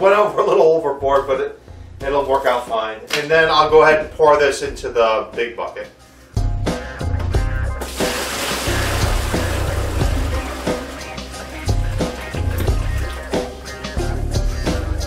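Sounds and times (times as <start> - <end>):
background music with bass beat: 6.4 - 15.0
water pouring into tub: 7.8 - 14.2.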